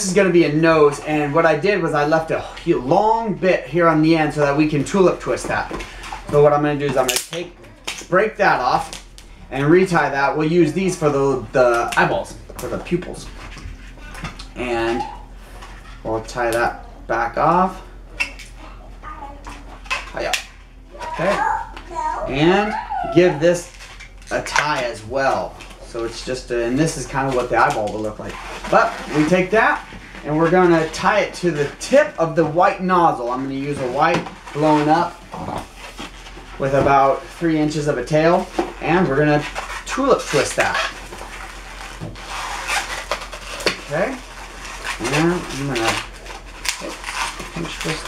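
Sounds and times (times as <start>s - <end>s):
rubbery squeaks: 20.9s - 26.0s, 27.1s - 32.8s, 38.3s - 48.0s.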